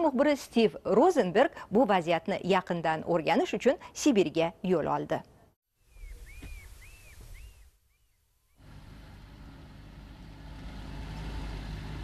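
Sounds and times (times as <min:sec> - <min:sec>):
bird chirping: 0:05.8 - 0:08.6
van engine rumble: 0:08.6 - 0:12.0.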